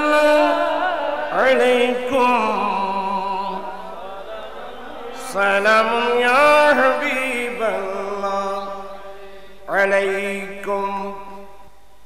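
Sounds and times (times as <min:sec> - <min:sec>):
man chanting over microphone: 0:00.0 - 0:11.8.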